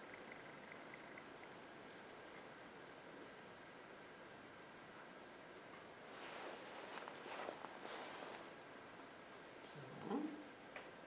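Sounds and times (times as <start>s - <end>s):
small clicks and crackles: 0.0s - 2.5s
rustling greenery: 6.0s - 8.7s.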